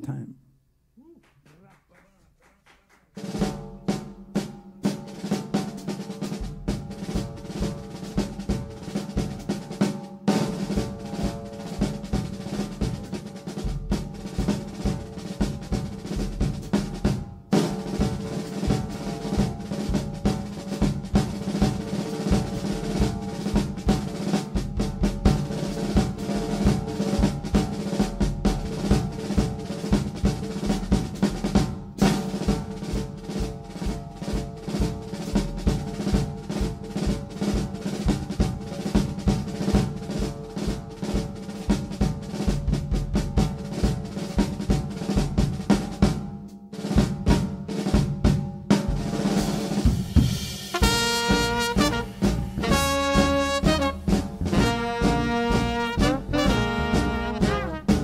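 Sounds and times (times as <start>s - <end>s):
jazz drum solo: 1.0s - 58.0s.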